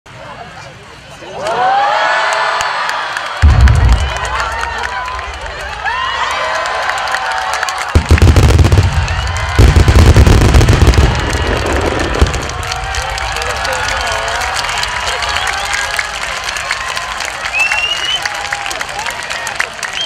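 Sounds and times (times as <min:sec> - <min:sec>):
crowd voices and cheers: 0:00.1 - 0:20.0
firework shells booming: 0:07.9 - 0:12.8.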